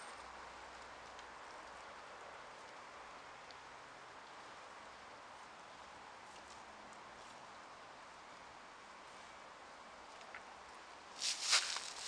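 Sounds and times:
footsteps through dry leaves: 0:11.1 - 0:12.0.

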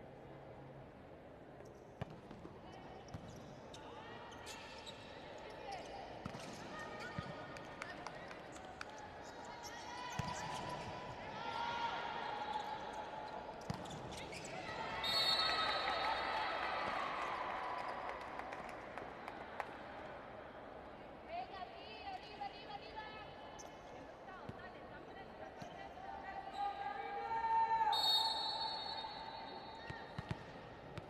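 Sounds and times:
sneakers squeaking on court: 0:13.6 - 0:14.7.

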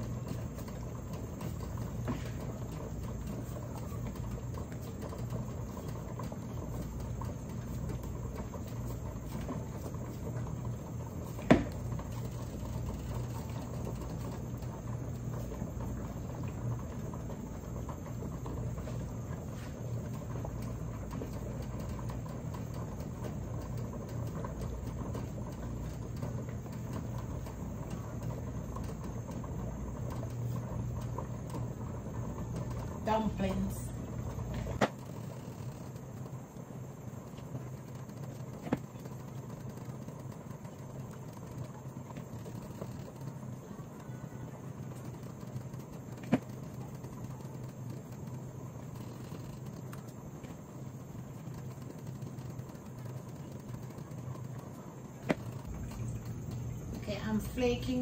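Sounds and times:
water bubbling at a rolling boil: 0:00.0 - 0:58.0
low hum: 0:42.3 - 0:58.0.

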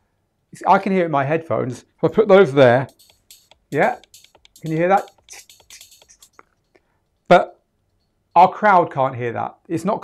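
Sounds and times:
tinny dance music from headphones: 0:02.0 - 0:07.3.

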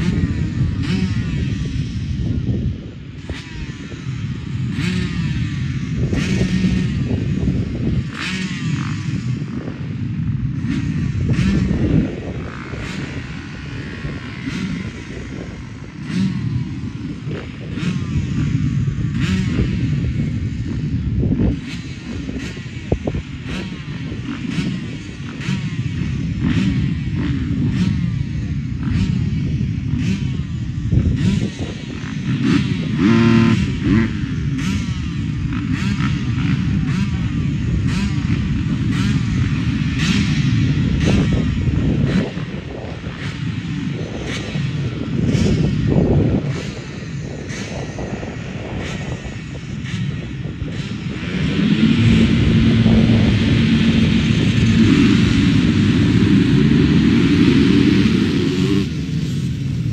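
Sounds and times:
motocross engines idling and revving: 0:00.0 - 0:59.9.

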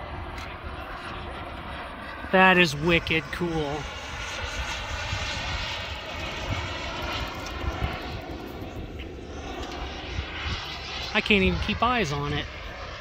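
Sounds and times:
model airplane engine drone: 0:00.0 - 0:13.0.

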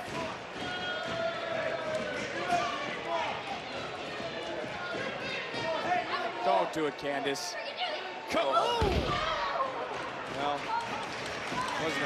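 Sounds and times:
voices in arena: 0:00.0 - 0:12.0.

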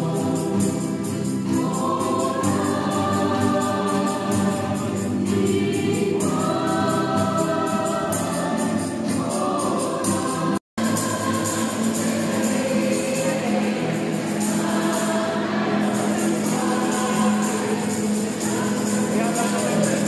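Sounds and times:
acoustic guitar: 0:00.0 - 0:20.0
choir singing long notes: 0:00.0 - 0:20.0.

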